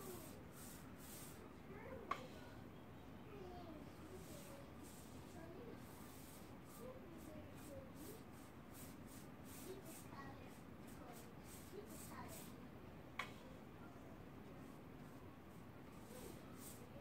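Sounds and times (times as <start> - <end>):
paintbrush strokes on wood: 0.0 - 1.9, 4.0 - 12.6, 14.5 - 17.0.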